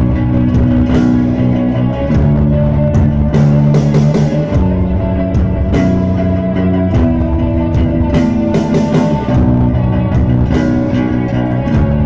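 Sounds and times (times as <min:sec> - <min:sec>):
bass guitar: 0:00.0 - 0:12.0
drum hits: 0:00.0 - 0:12.0
electric guitar: 0:00.0 - 0:12.0.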